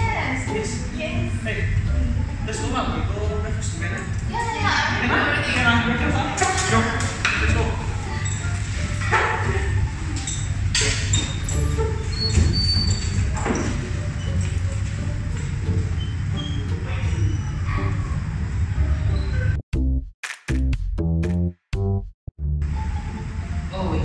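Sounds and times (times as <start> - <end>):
background music with low beat: 0.0 - 17.4, 19.5 - 24.0.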